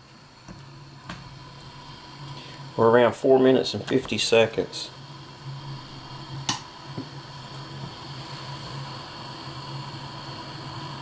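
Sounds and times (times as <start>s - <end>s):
faint hiss: 0.0s - 11.0s
stove burning rumble: 0.0s - 11.0s.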